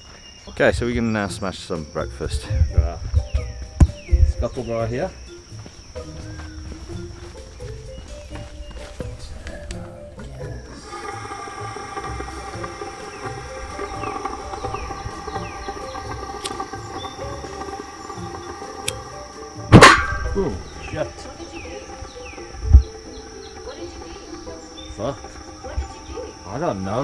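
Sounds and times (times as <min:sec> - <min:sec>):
background music: 0:00.6 - 0:27.0
gas burner igniting with bang: 0:10.9 - 0:21.6.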